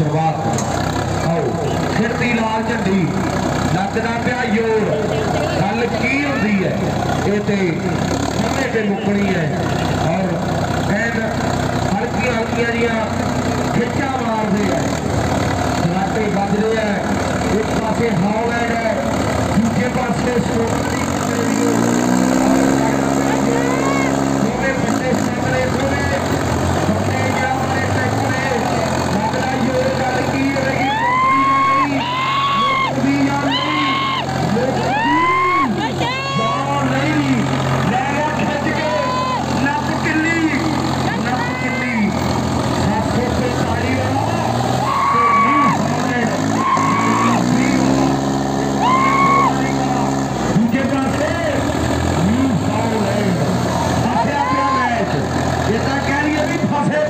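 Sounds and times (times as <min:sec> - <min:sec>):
tractor diesel engines under load: 0:00.0 - 0:57.0
spectators shouting: 0:22.6 - 0:24.4, 0:29.6 - 0:40.0, 0:40.6 - 0:42.4, 0:43.4 - 0:50.4, 0:53.5 - 0:55.2.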